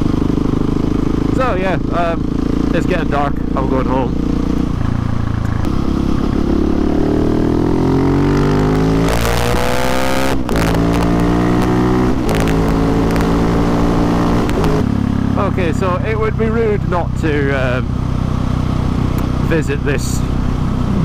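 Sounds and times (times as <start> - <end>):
motorcycle engine shifting gears: 0.0 - 16.5, 17.1 - 21.0.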